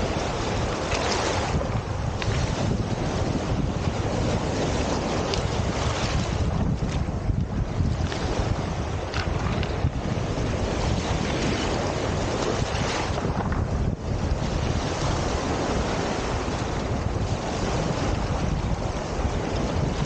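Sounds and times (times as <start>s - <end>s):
waves washing over stones: 0.0s - 20.0s
wind buffeting microphone: 0.0s - 20.0s.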